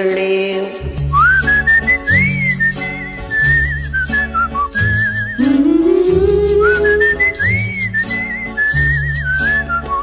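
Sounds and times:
backing music with ticking beat: 0:00.0 - 0:10.0
whistled melody: 0:01.0 - 0:10.0.

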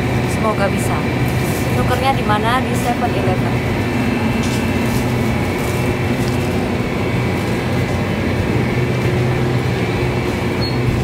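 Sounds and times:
low machinery hum: 0:00.0 - 0:11.0
store background rushing: 0:00.0 - 0:11.0.

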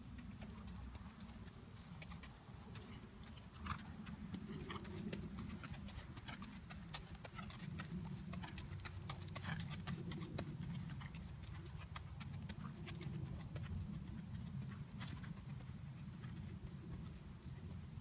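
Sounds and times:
hooves trotting on gravel: 0:00.0 - 0:18.0.

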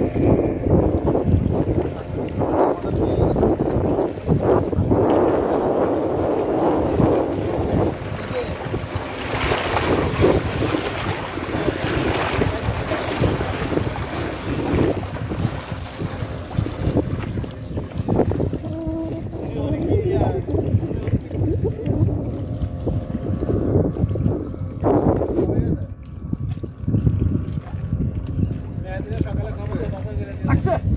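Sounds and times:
seawater washing against rocks: 0:00.0 - 0:30.9
wind buffeting the microphone: 0:00.0 - 0:30.9.

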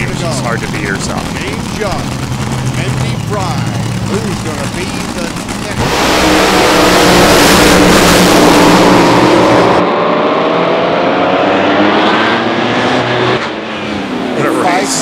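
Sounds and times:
dragster engines roaring: 0:00.0 - 0:15.0.

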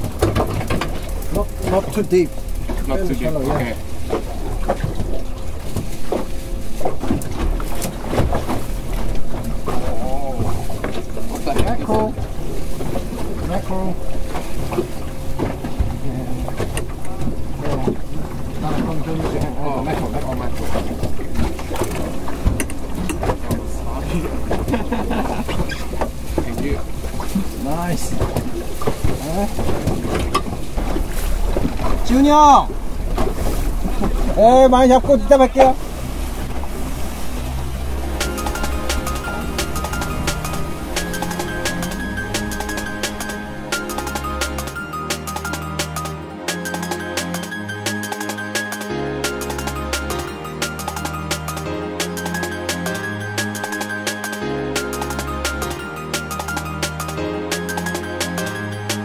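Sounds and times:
low rumble: 0:00.0 - 0:45.2
water slapping boat hull: 0:00.0 - 0:59.0
wind buffeting microphone: 0:25.4 - 0:43.7.

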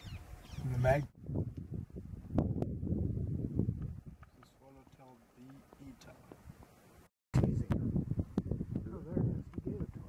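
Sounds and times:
wind buffeting microphone: 0:00.0 - 0:04.8, 0:07.4 - 0:10.0
faint outdoor background: 0:00.0 - 0:10.0.

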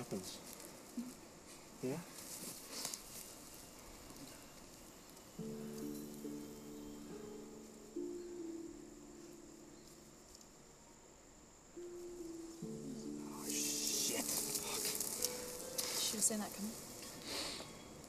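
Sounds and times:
loud hissing crackling noise: 0:00.0 - 0:08.7, 0:09.4 - 0:18.0.

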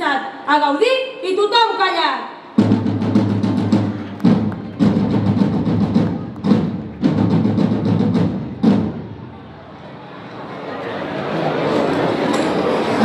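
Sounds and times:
drums playing rolling beat: 0:02.6 - 0:09.3.

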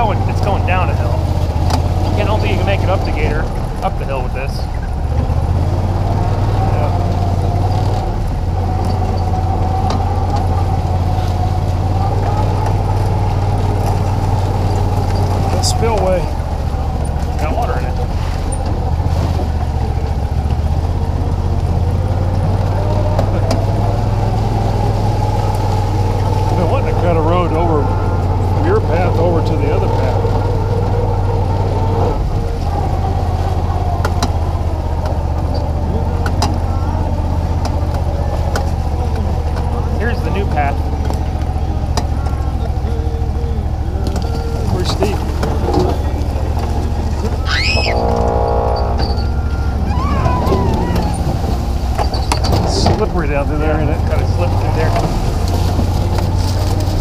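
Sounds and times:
engine whine: 0:00.0 - 0:57.0
utility vehicle engine driving: 0:00.0 - 0:57.0.

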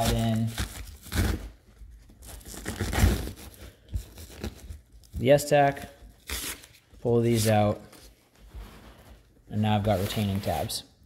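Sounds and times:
paper and fabric rustling: 0:06.6 - 0:10.8.

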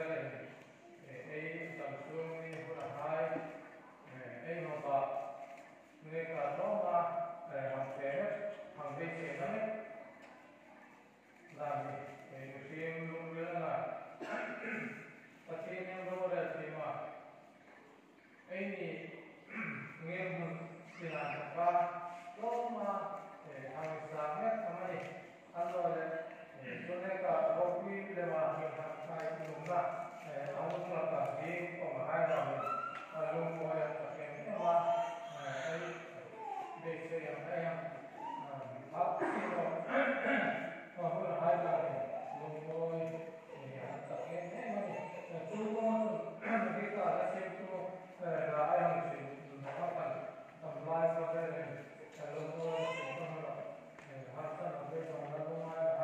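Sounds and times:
man talking over a microphone: 0:00.0 - 0:05.3, 0:06.0 - 0:09.9, 0:11.5 - 0:14.8, 0:15.5 - 0:17.2, 0:18.5 - 0:56.0.

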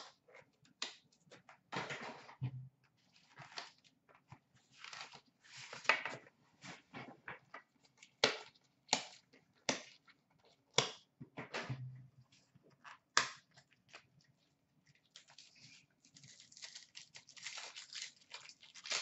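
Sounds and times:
card wrapper rustling and crinkling: 0:15.0 - 0:19.0
wrapper snapping and tearing: 0:15.1 - 0:19.0.

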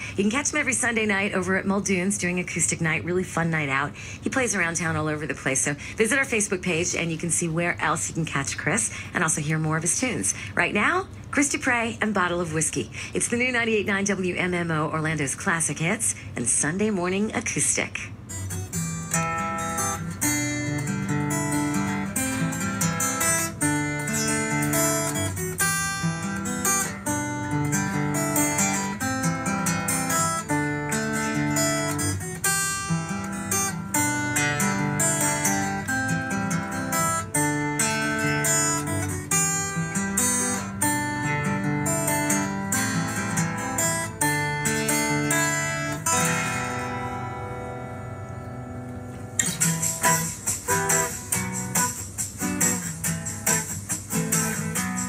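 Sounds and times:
acoustic guitar picked and strummed: 0:00.0 - 0:16.3, 0:17.0 - 0:55.0.

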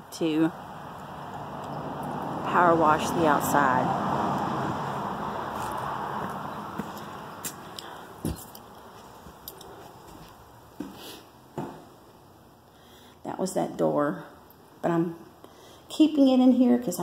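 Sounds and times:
soft knocks of footsteps and handling: 0:05.5 - 0:12.0.

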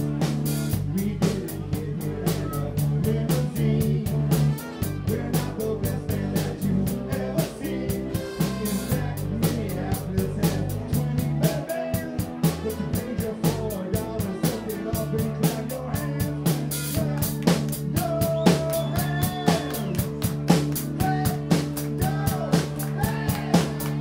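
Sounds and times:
drums steady beat: 0:00.0 - 0:24.0
live rock band: 0:00.0 - 0:24.0.

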